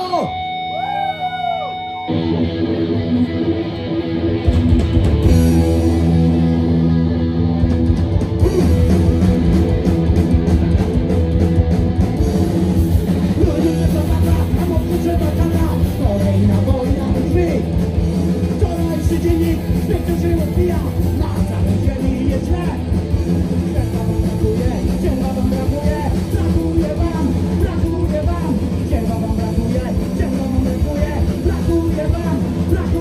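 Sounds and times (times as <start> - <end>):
punk rock band playing live: 0.0 - 33.0.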